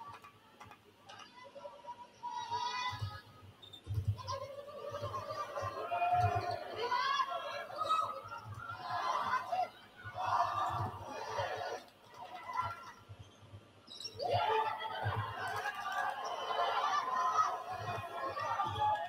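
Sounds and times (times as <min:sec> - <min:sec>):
indistinct background voices: 0:04.0 - 0:13.0, 0:14.2 - 0:19.0.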